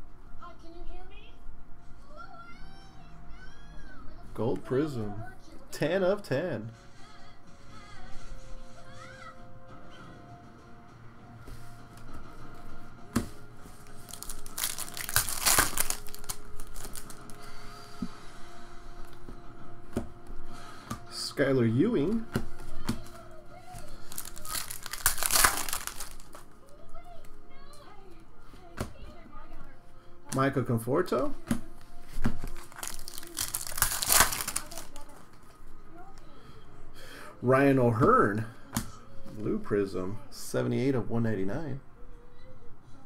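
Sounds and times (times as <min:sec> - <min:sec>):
cards handled with light clicks: 0:13.2 - 0:17.4
foil wrapper tearing and crinkling: 0:13.8 - 0:17.5, 0:23.8 - 0:26.5, 0:32.4 - 0:35.4.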